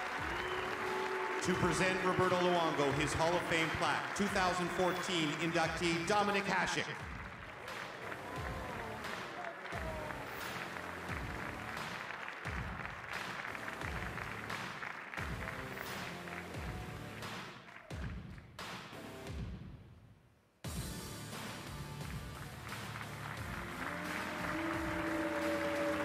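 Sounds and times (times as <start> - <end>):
audience applauding: 0.0 - 18.4, 22.0 - 26.0
music with steady beat: 7.0 - 20.0, 20.7 - 26.0.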